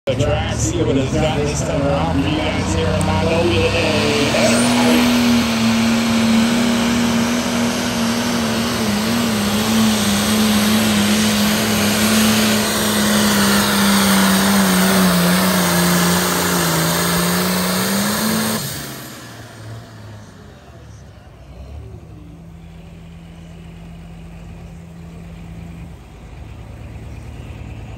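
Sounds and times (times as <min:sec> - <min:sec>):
diesel tractor engine roaring: 0:00.0 - 0:27.9.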